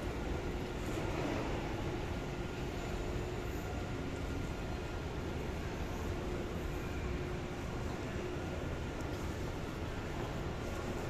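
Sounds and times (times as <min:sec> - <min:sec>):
air-conditioning rumble and hiss: 0:00.0 - 0:11.0
faint steady hum: 0:00.0 - 0:11.0.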